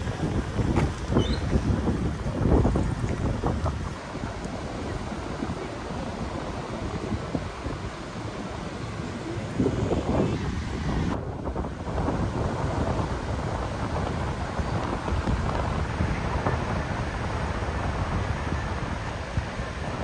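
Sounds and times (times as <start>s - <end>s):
wind buffeting microphone: 0.0s - 20.0s
ocean surf: 1.8s - 20.0s.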